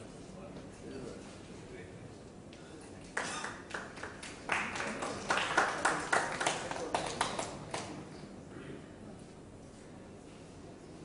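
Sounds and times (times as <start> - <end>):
audience hand clapping: 3.1 - 8.2.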